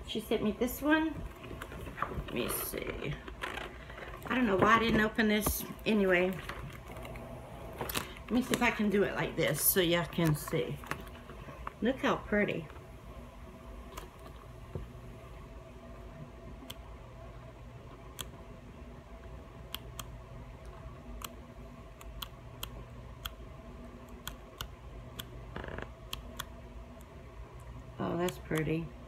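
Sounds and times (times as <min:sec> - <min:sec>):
low room hum: 0:00.0 - 0:29.0.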